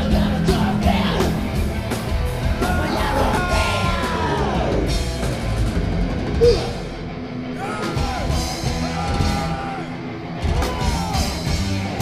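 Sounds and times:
thrash metal band playing live: 0:00.0 - 0:12.0.

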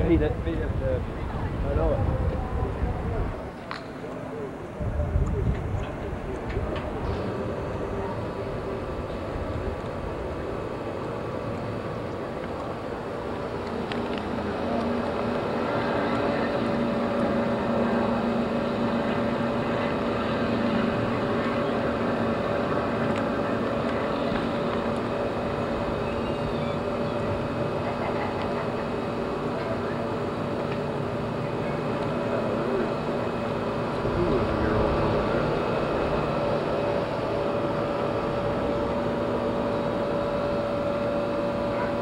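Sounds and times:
street noise: 0:00.0 - 0:42.0
vehicle engine humming: 0:00.0 - 0:42.0.

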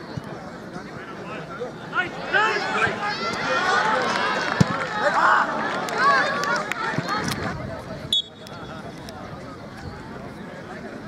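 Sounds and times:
players shouting: 0:01.2 - 0:07.4.

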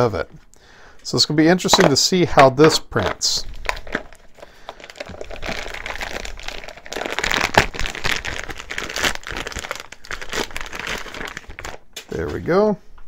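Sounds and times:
plastic bag crinkling: 0:01.7 - 0:12.2.

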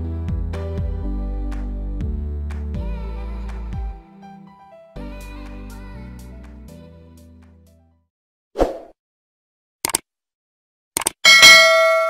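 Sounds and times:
mouse clicks: 0:09.8 - 0:10.0, 0:11.0 - 0:11.2
notification bell ding: 0:11.3 - 0:12.0.

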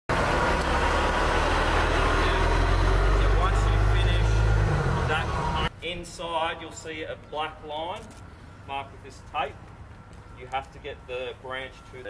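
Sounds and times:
large engine rumbling: 0:00.1 - 0:05.7.

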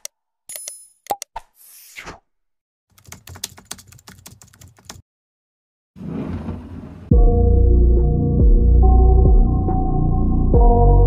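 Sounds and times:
rapid keyboard typing: 0:02.9 - 0:05.0.

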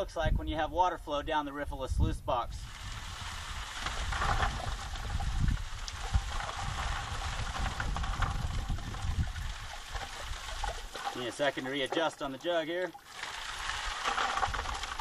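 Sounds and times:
water trickling and splashing: 0:02.6 - 0:15.0.

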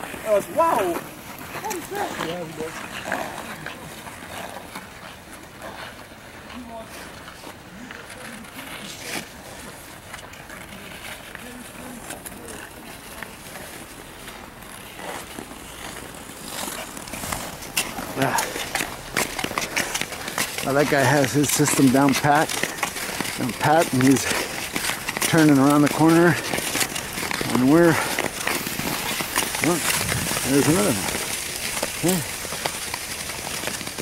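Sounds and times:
skate blades scraping on ice: 0:00.0 - 0:34.0.

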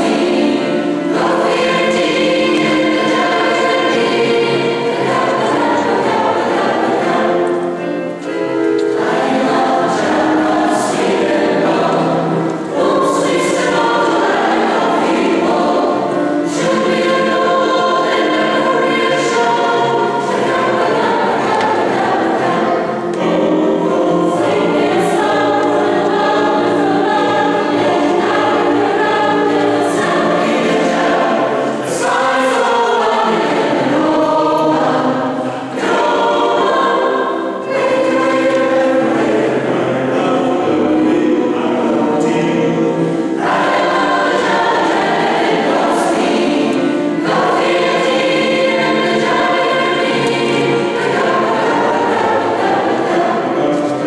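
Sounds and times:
mixed choir singing: 0:00.0 - 0:54.0.

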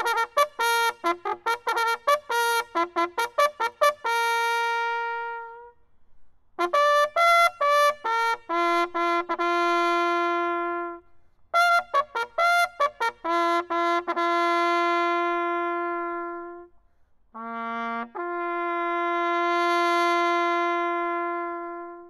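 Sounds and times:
solo bugle call: 0:00.0 - 0:05.8, 0:06.6 - 0:16.8, 0:17.4 - 0:22.0.

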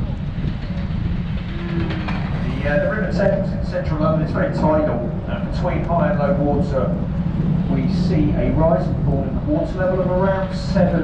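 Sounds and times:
boat engine rumble: 0:00.0 - 0:11.0.

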